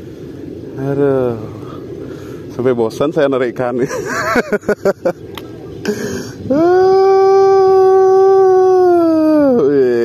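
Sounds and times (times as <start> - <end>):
man's wavering vocal sound: 6.1 - 10.0.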